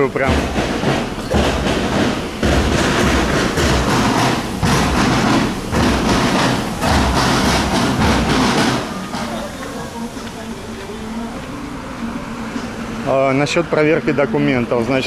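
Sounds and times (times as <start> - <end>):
bass drum thumps: 0.0 - 9.4
marching snare drum: 0.0 - 10.4.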